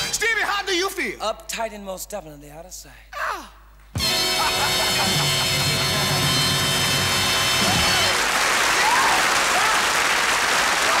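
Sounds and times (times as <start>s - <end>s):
audience applause: 6.9s - 11.0s.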